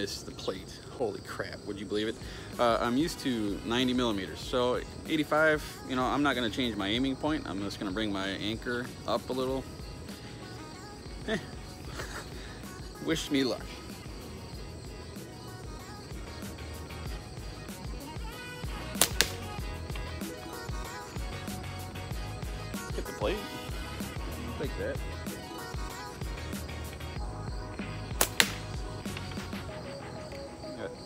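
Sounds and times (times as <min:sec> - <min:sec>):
slingshot bands snapping: 0:18.9 - 0:19.6, 0:28.2 - 0:29.4
ball striking paper plate: 0:28.2 - 0:29.4.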